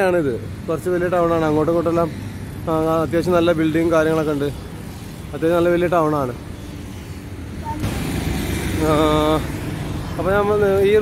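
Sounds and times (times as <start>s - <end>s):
low traffic rumble: 0.0s - 11.0s
vehicles passing on road: 0.0s - 11.0s.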